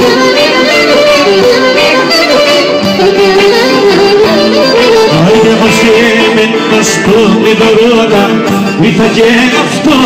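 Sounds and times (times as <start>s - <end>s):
clarinet melody: 0.0s - 6.7s
live band playing: 0.0s - 10.0s.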